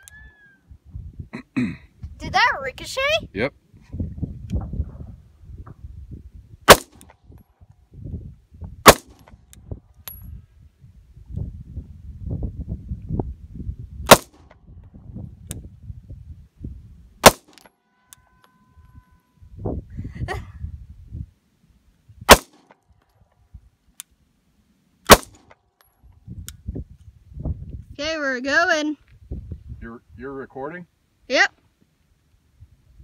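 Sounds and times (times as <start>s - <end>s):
pistol shots: 6.7s - 7.0s, 8.8s - 9.2s, 14.1s - 14.4s, 17.2s - 17.6s, 22.3s - 22.7s, 25.1s - 25.5s.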